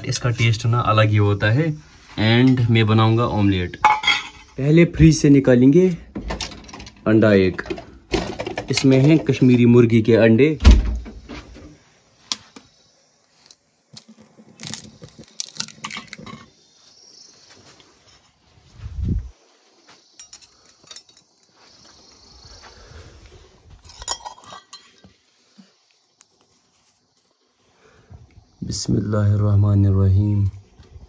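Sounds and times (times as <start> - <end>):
steel utensils clinking: 3.8 - 4.6, 20.2 - 21.5, 23.9 - 25.0
dull thump: 10.6 - 11.6.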